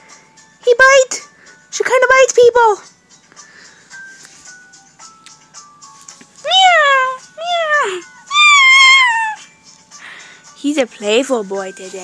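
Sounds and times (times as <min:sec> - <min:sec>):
faint background music: 0:00.0 - 0:12.0
cat meowing: 0:06.5 - 0:09.5.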